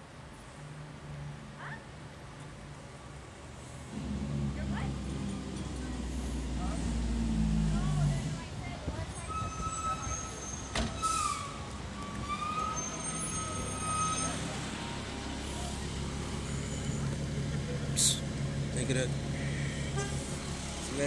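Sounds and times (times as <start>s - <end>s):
vehicle engines humming: 0.0s - 21.0s
high-pitched squeal: 9.2s - 15.8s.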